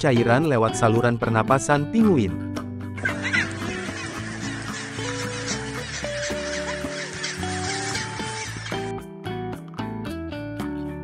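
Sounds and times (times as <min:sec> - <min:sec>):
background music: 0:00.0 - 0:11.0
penguins calling: 0:03.0 - 0:08.9.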